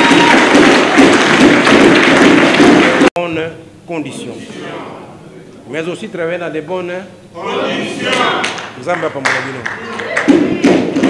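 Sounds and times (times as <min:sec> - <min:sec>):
audience applauding: 0:00.0 - 0:03.1, 0:08.0 - 0:10.6.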